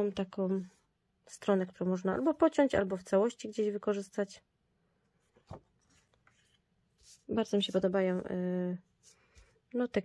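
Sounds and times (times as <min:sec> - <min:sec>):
paper rustling on table: 0:05.2 - 0:07.8.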